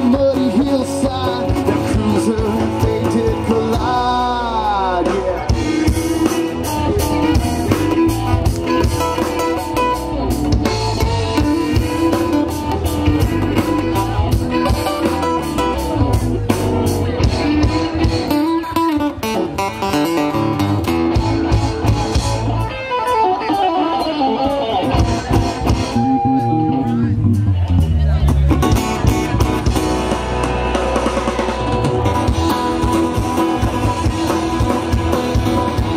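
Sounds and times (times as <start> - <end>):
acoustic guitar: 0.0 - 35.9
bass guitar: 0.0 - 35.9
drum kit steady beat: 0.0 - 35.9
electric guitars: 0.0 - 35.9.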